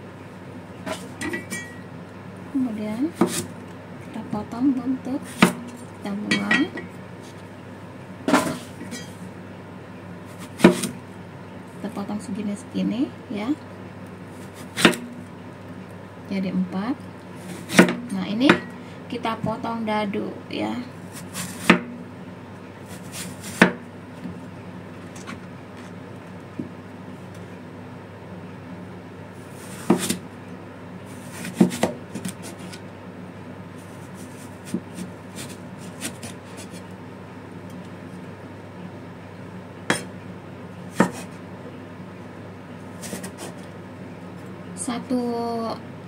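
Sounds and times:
steady low hum: 0.0 - 46.0.

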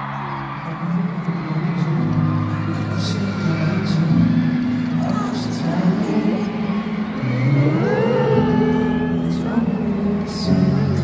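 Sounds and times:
crowd noise: 0.0 - 11.0
pop ballad over sound system: 0.0 - 11.0.

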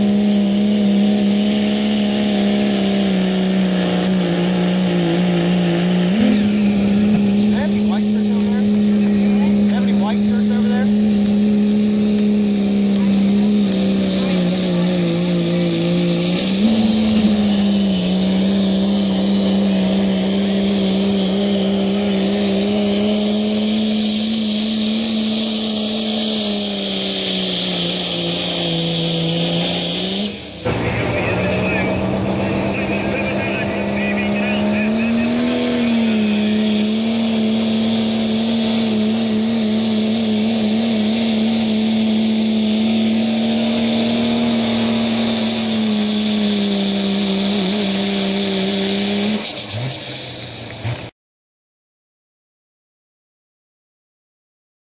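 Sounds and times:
diesel truck engine revving high: 0.0 - 51.1.

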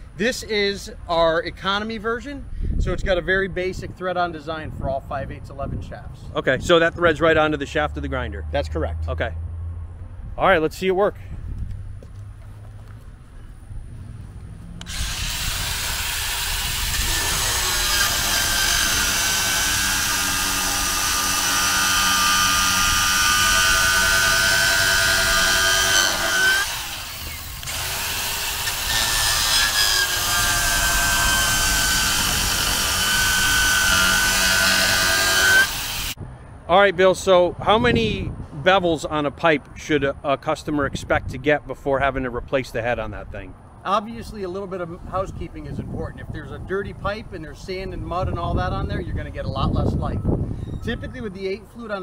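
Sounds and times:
angle grinder whining: 14.8 - 36.2
grinding of plastic pipe: 14.9 - 35.7.

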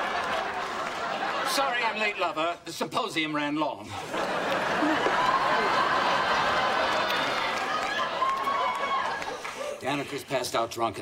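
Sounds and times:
studio audience laughing: 0.0 - 2.4, 3.8 - 10.0.

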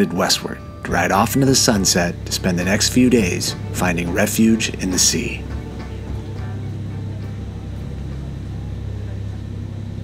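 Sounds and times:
background music: 0.0 - 10.0
boat engine rumbling: 0.0 - 10.0.

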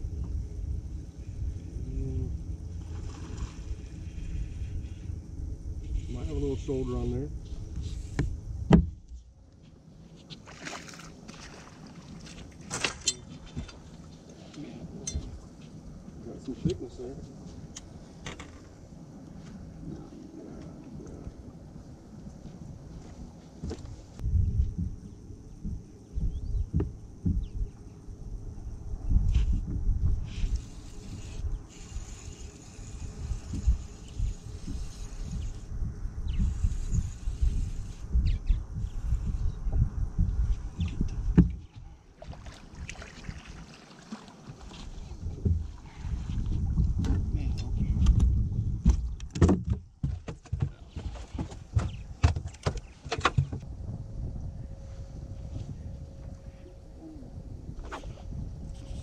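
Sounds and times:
wind rumbling on microphone: 0.0 - 43.8, 44.4 - 59.0.

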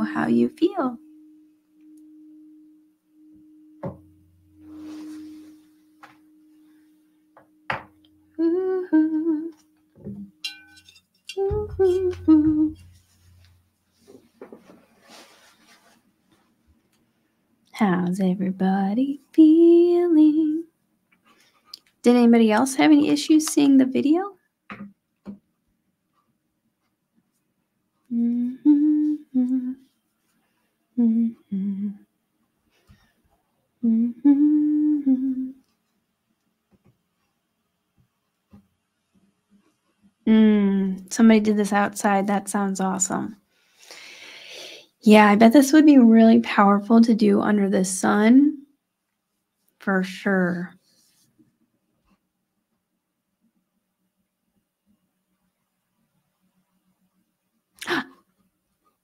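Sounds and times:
crystal singing bowl tone: 0.0 - 13.6
knock: 3.8 - 4.0
woman humming: 7.5 - 9.8, 11.3 - 13.0, 18.7 - 20.7, 28.1 - 29.9, 31.0 - 32.1, 33.8 - 35.7, 40.3 - 41.1, 57.8 - 58.2.

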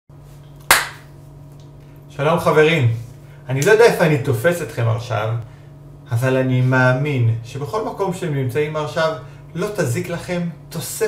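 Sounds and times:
hand clap: 0.6 - 1.1.

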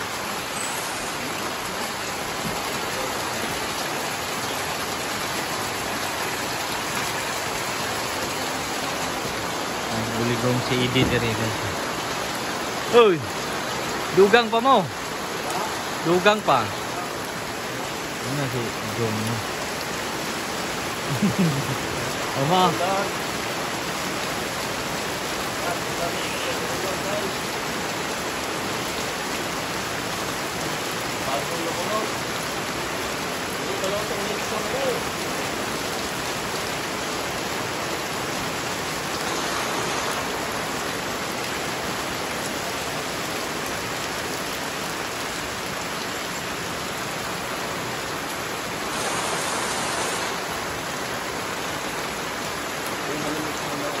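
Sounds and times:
heavy rain: 0.0 - 54.0
water streaming off roof: 0.0 - 54.0.

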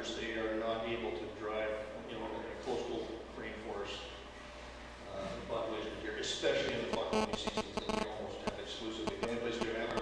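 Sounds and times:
man speaking with room echo: 0.0 - 4.2, 5.0 - 10.0.

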